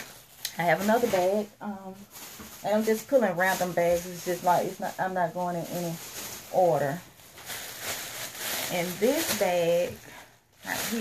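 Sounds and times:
plastic bag rustling: 0.0s - 11.0s
person speaking: 0.5s - 2.0s, 8.7s - 10.0s.

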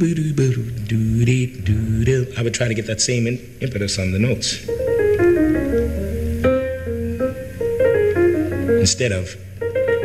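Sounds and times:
jazz piano phrase: 4.5s - 10.0s.

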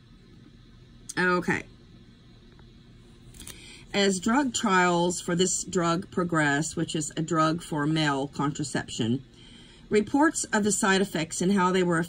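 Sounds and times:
woman reading aloud: 1.1s - 1.7s, 3.9s - 9.2s, 9.9s - 12.0s.

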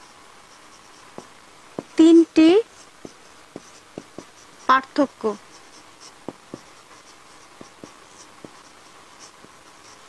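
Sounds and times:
marker squeaking on whiteboard: 0.6s - 10.0s
marker tapping on whiteboard: 1.1s - 2.0s, 3.0s - 4.4s, 6.0s - 6.8s, 7.6s - 9.6s.

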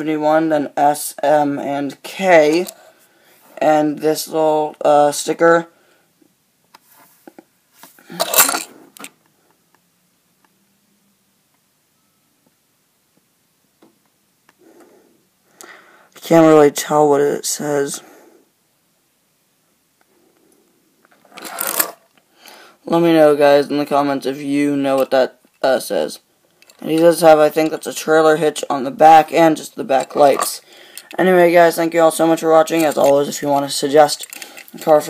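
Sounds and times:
short rustling scrape: 6.8s - 8.9s
toy car scraping on surface: 21.3s - 22.0s.

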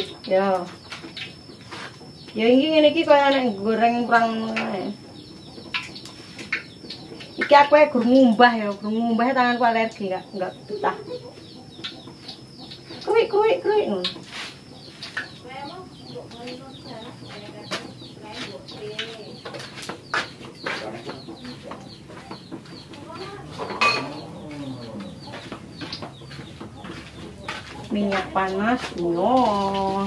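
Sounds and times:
chickens clucking: 0.0s - 30.0s.

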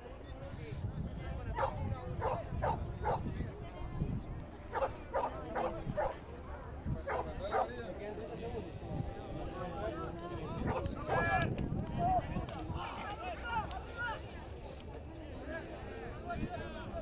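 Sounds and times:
dog barking: 1.6s - 3.2s, 4.7s - 6.2s, 7.1s - 7.7s.

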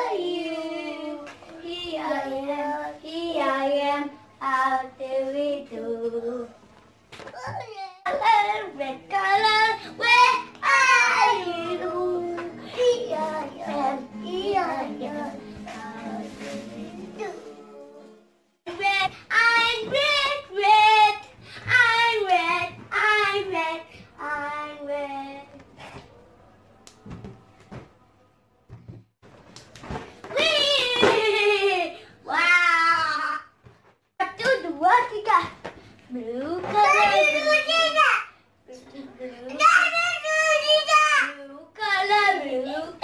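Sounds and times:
child singing: 0.0s - 6.5s, 7.4s - 25.6s, 36.6s - 38.2s, 39.0s - 43.0s.

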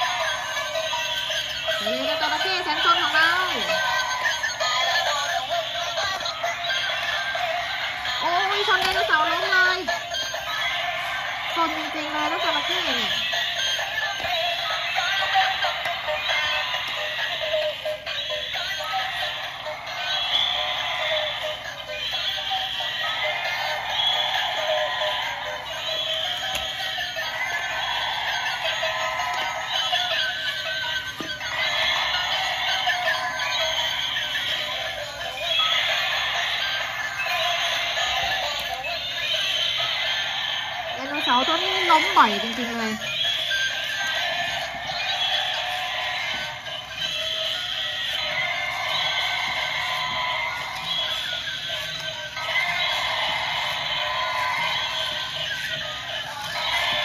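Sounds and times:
tinny electronic toy music: 0.0s - 57.0s.

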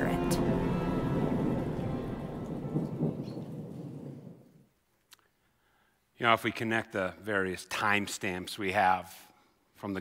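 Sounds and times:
rain: 0.0s - 4.4s
rolling thunder: 0.0s - 4.6s.

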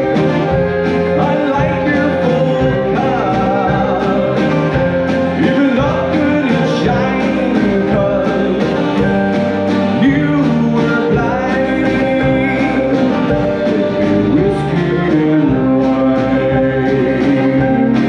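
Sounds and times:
acoustic guitar: 0.0s - 18.0s
drum kit steady beat: 0.0s - 18.0s
electric bass: 0.0s - 18.0s
fiddle: 0.0s - 18.0s
mandolin: 0.0s - 18.0s.

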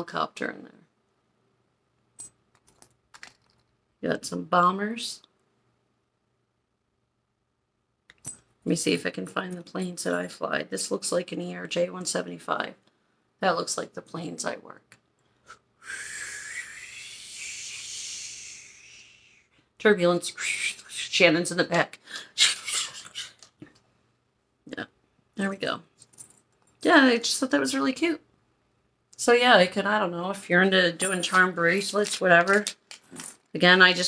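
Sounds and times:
person imitating jet whoosh: 15.8s - 19.5s.

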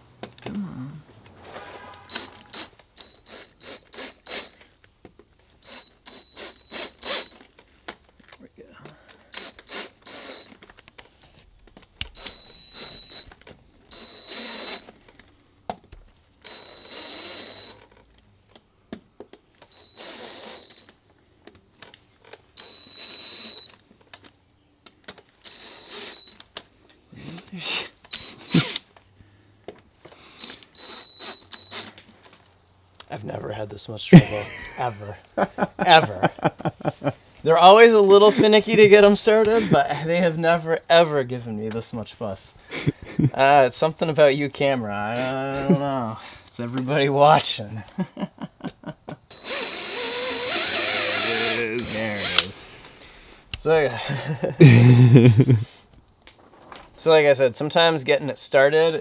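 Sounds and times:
cordless drill whining: 1.5s - 4.8s, 5.4s - 7.9s, 9.0s - 15.3s, 16.4s - 18.2s, 19.6s - 21.0s, 22.2s - 23.9s, 25.3s - 26.7s, 27.5s - 29.0s, 30.0s - 32.4s, 49.3s - 53.2s
cutter chattering and clicking: 2.1s - 4.7s, 5.6s - 7.6s, 48.7s - 52.6s.

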